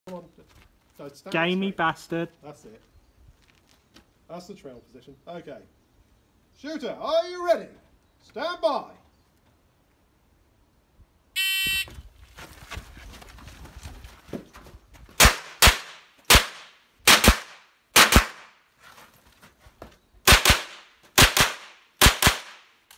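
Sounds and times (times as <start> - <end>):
shot timer beep: 11.4 - 11.9
rifle shots: 15.2 - 18.5, 20.3 - 22.7.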